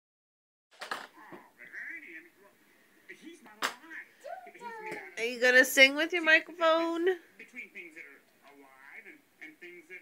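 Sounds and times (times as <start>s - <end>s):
voices talking: 1.1s - 10.0s.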